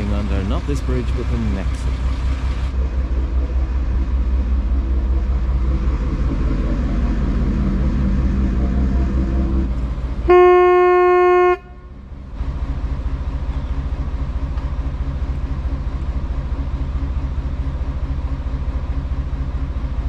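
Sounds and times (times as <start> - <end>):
boat engine throbbing: 0.0 - 20.0
horn blast: 6.2 - 12.0.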